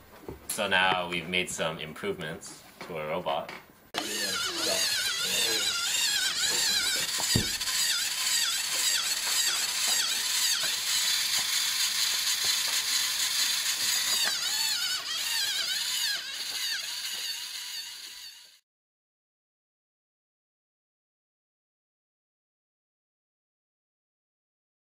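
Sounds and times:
robot gear motors whining: 4.0 - 18.6.

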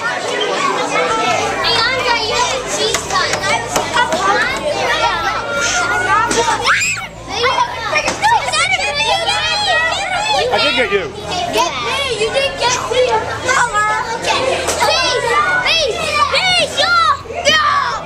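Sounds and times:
children chattering and calling out: 0.0 - 18.0.

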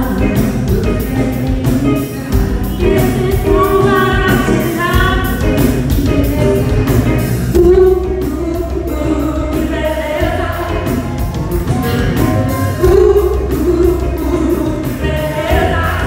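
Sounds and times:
women singing together: 0.0 - 11.0, 12.8 - 16.0
live soul band playing: 0.0 - 16.0.

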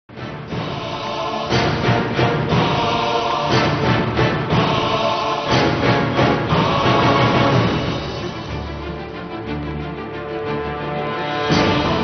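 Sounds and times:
choir and orchestra music: 0.1 - 12.0
heavy hits: 0.2 - 8.8.

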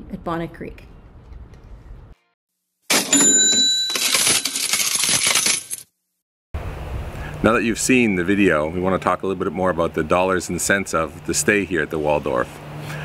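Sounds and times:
cash register bell ring: 2.9 - 5.8
coins clattering and jingling: 2.9 - 5.9.

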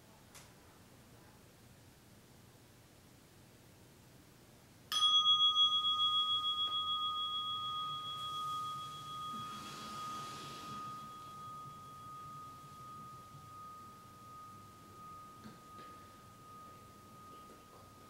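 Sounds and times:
meditation bell ringing: 4.9 - 18.0.

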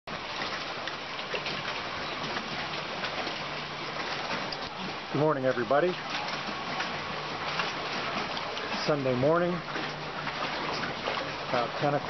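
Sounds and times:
small waves lapping and splashing: 0.1 - 12.0.

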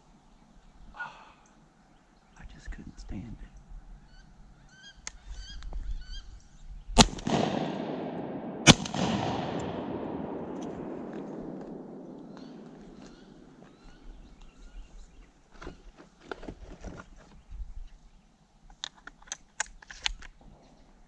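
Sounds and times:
high rising bird calls: 3.9 - 6.9, 11.8 - 15.2
echoing shotgun shots: 7.0 - 13.8.

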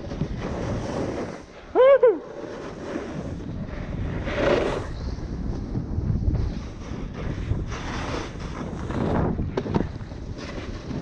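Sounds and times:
skis scraping packed snow: 0.0 - 11.0
wind buffeting microphone: 2.2 - 11.0.

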